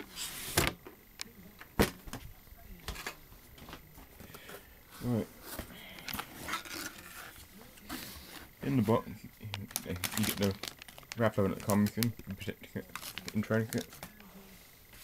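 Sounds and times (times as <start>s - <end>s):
plastic bag crinkling: 8.8s - 14.1s.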